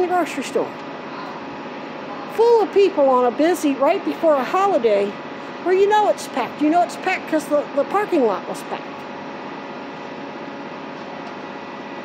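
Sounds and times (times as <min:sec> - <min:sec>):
steady mechanical hum: 0:00.0 - 0:12.0.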